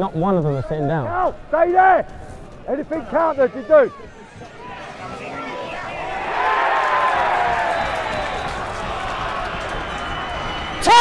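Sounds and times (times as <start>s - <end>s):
football crowd voices: 0.1s - 11.0s
crowd shouts: 2.7s - 11.0s.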